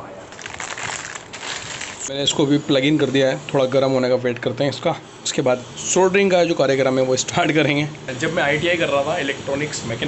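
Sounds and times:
plastic bag crinkling: 0:00.3 - 0:02.2.

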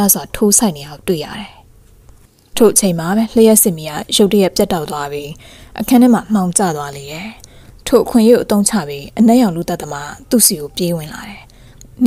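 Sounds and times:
woman narrating: 0:00.0 - 0:01.6, 0:02.5 - 0:12.0.

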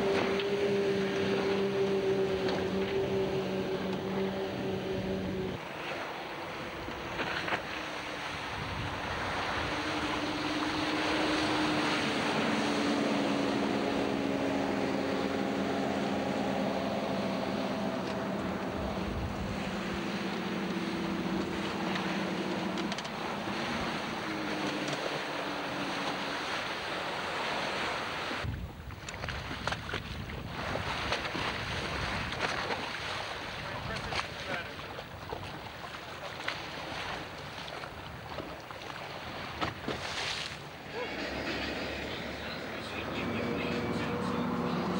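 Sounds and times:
boat engines running: 0:00.0 - 0:44.9
hull rushing through water: 0:00.0 - 0:44.9
wind buffeting microphone: 0:08.2 - 0:25.6, 0:28.4 - 0:35.7.

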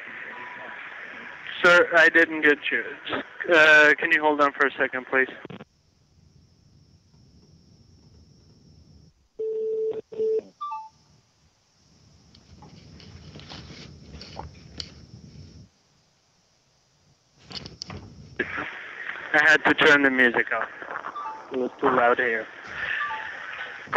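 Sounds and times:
faint phone line hiss: 0:00.0 - 0:05.4, 0:09.4 - 0:11.2, 0:18.4 - 0:23.9
muffled background noise: 0:00.0 - 0:05.7, 0:17.4 - 0:23.9
higher beeps: 0:21.1 - 0:21.6, 0:22.9 - 0:23.3.

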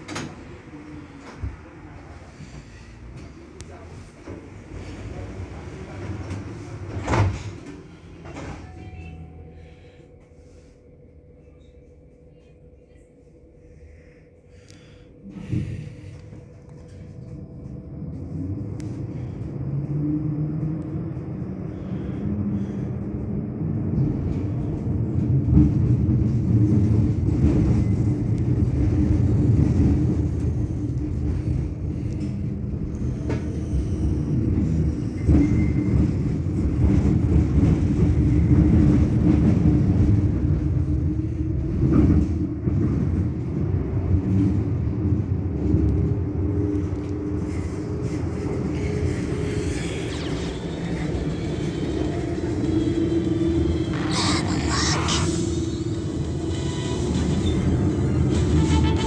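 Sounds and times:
tram humming: 0:00.0 - 0:59.0.

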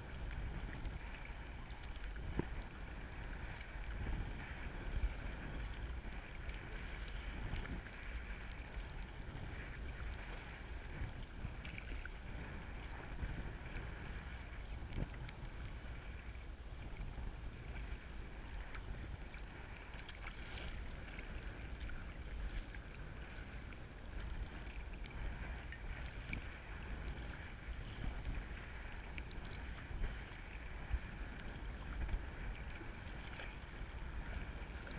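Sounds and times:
water lapping against kayak hull: 0:00.0 - 0:34.9
wind rumbling on microphone: 0:00.0 - 0:34.9.

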